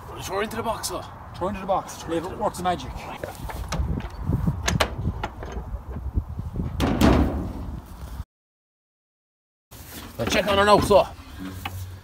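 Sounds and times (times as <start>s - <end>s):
wooden box banging and rattling: 6.8s - 7.8s.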